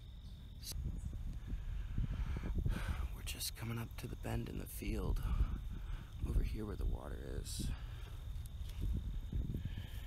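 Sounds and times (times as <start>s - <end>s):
high insect drone: 0.0s - 10.0s
footsteps through dry grass: 7.9s - 10.0s.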